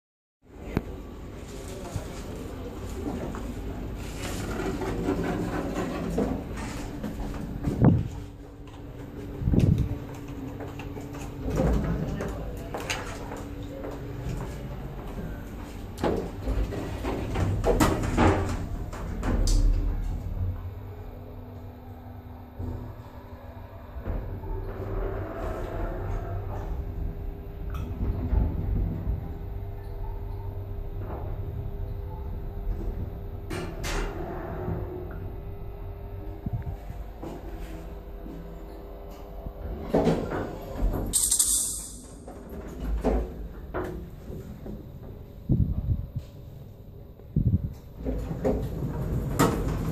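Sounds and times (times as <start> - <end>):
elevator pump motor humming: 0.5 - 41.3.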